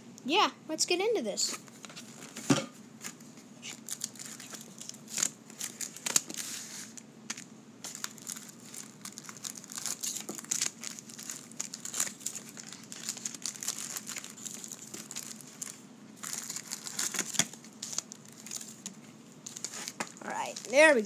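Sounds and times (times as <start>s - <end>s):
card pack wrappers crinkling: 3.0s - 21.0s.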